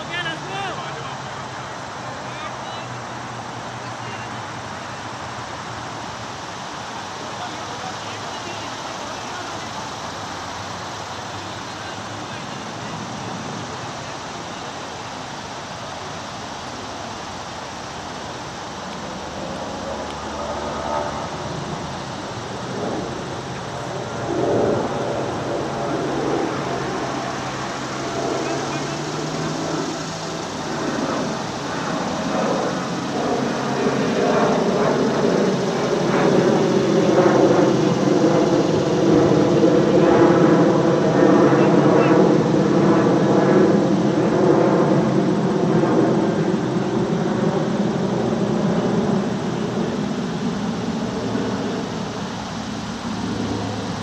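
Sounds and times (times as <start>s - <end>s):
voices: 0.0s - 6.0s, 7.0s - 17.2s, 18.3s - 44.9s
motor engine drone: 18.7s - 54.0s.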